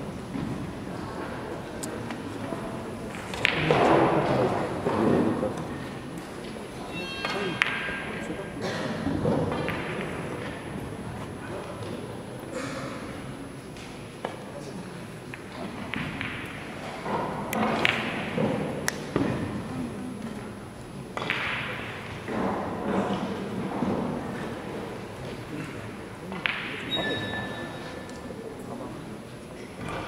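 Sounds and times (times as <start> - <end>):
murmur of voices: 0.0 - 30.0.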